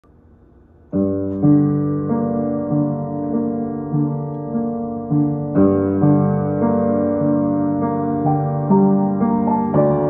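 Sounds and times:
piano chord ringing: 0.9s - 10.0s.

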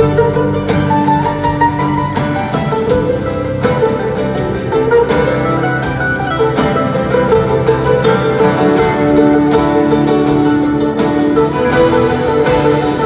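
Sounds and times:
drums: 0.0s - 13.0s
guitars: 0.0s - 13.0s
live folk-rock band playing: 0.0s - 13.0s.

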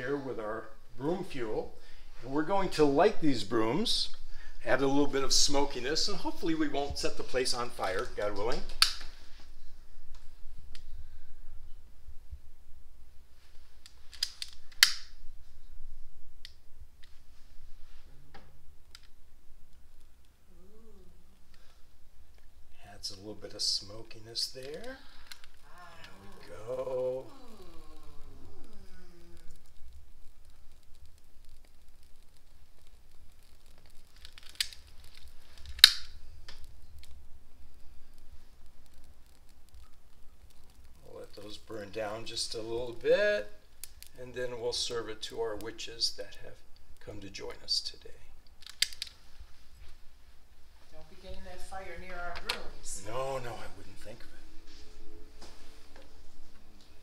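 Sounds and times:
faint low hum: 0.0s - 57.0s
lighter gas hiss: 7.2s - 11.9s, 13.2s - 18.3s, 24.4s - 43.0s
utility lighter clicks: 14.1s - 15.2s, 33.6s - 36.7s, 48.6s - 49.2s.

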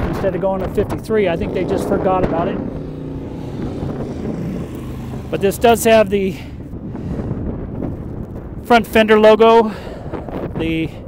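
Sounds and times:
motorcycle engine idling: 0.5s - 7.0s.

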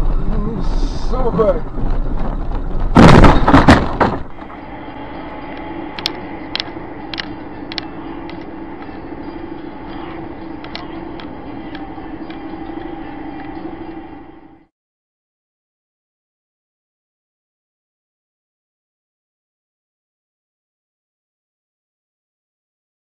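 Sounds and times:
vehicle driving on road: 0.0s - 14.7s
sharp clicks: 6.0s - 8.5s.

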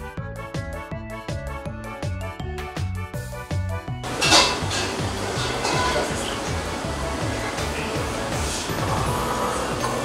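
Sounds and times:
background music with beat: 0.0s - 10.0s
ceramic spoon clattering in bowl: 4.1s - 6.1s.

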